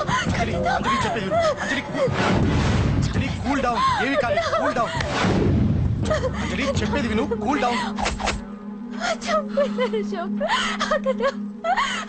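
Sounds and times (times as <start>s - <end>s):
loud low rumble: 0.0s - 7.4s.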